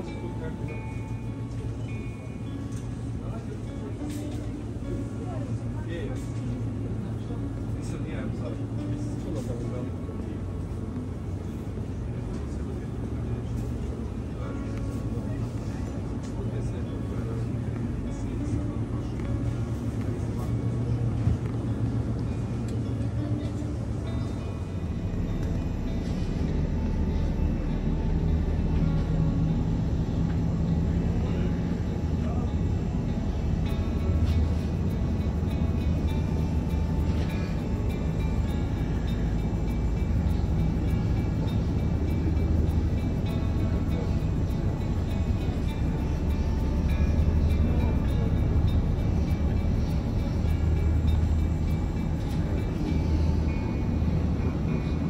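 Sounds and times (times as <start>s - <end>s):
indistinct background voices: 0.0s - 55.0s
steady low hum: 0.0s - 55.0s.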